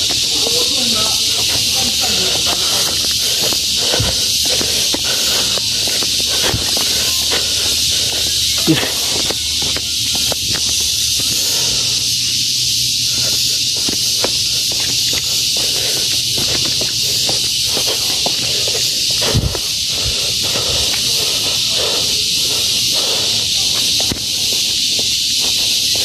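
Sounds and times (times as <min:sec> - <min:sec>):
footsteps on concrete steps: 0:00.0 - 0:26.0
forest insects hissing: 0:00.0 - 0:26.0.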